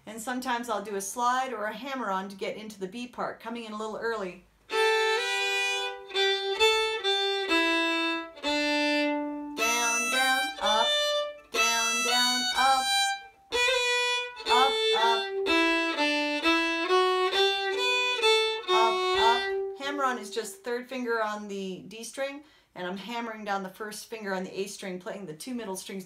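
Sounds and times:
solo fiddle bowing: 0:04.7 - 0:20.3.

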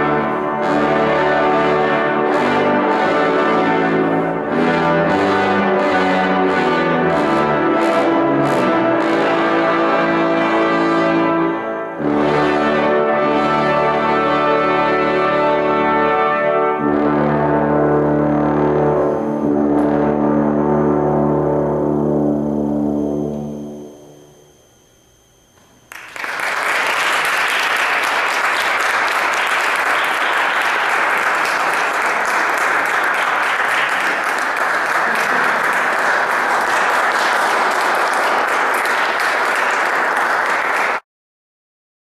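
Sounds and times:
brass choir chord: 0:00.0 - 0:23.8
audience applauding: 0:25.9 - 0:41.0.

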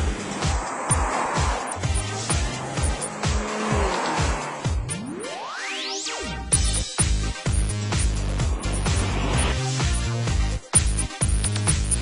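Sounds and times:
car rushing past: 0:00.0 - 0:05.0
electronic music with kick drum: 0:00.0 - 0:12.0.

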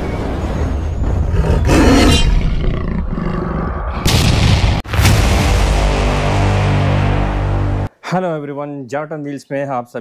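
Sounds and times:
big cat roar: 0:01.3 - 0:04.0.

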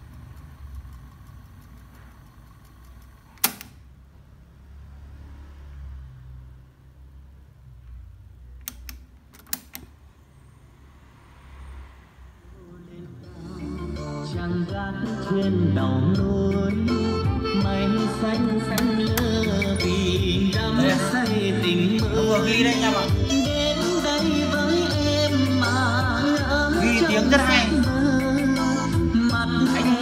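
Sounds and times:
song with singing from tape: 0:12.5 - 0:30.0.

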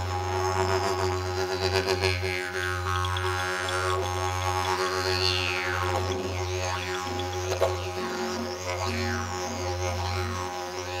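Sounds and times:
low drone with pulsing overtones: 0:00.0 - 0:11.0.

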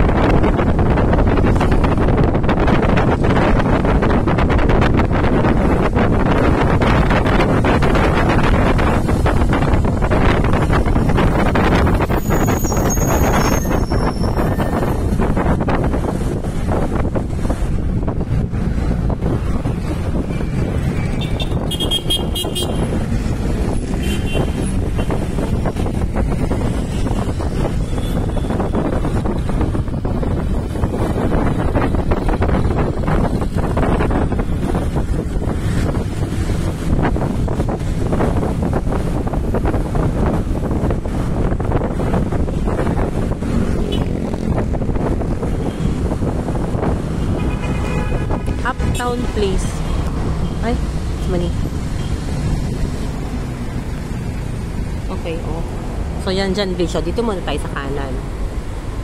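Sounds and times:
passing cars and motorcycles: 0:00.0 - 0:59.0
vehicle engine and tyres rumbling: 0:00.0 - 0:59.0.

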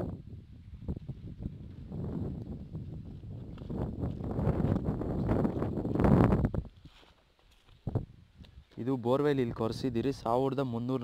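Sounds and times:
wind buffeting microphone: 0:00.0 - 0:07.0, 0:07.7 - 0:10.4.

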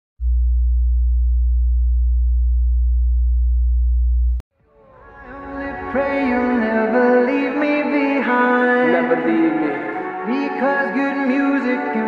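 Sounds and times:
deep bass sine drone: 0:00.2 - 0:04.4.

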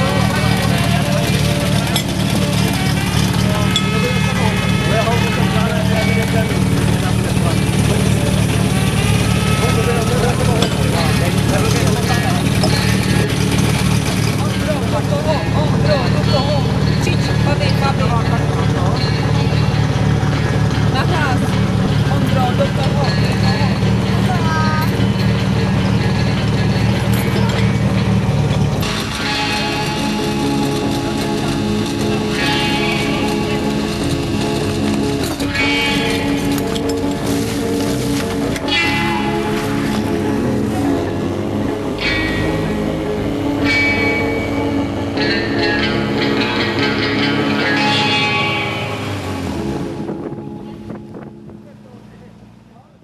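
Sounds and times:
people talking: 0:00.0 - 0:30.0, 0:30.8 - 0:34.4, 0:51.5 - 0:53.0
pump engine idling: 0:00.0 - 0:52.6.

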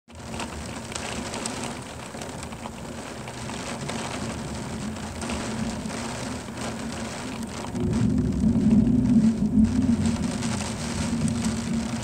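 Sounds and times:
steady rain patter: 0:00.1 - 0:12.0.

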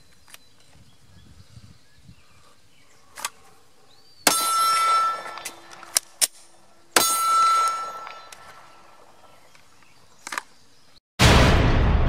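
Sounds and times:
metallic ringing: 0:04.3 - 0:05.9, 0:06.9 - 0:08.4.

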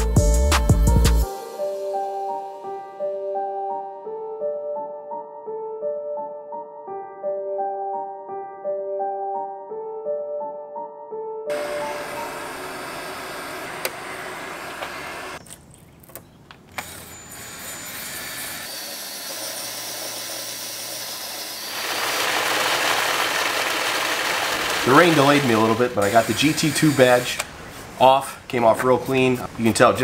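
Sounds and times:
piano music: 0:00.0 - 0:14.7
drill motor hum: 0:11.5 - 0:15.4, 0:16.7 - 0:27.5
eraser wheel rubbing hiss: 0:25.0 - 0:27.4.

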